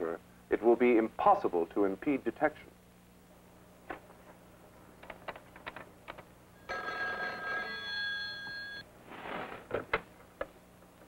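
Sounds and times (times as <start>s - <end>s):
telephone bell ringing: 6.6s - 8.8s.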